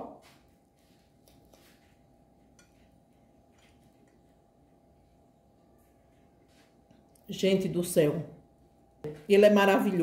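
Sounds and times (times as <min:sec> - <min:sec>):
faint steady hum: 0:00.1 - 0:10.0.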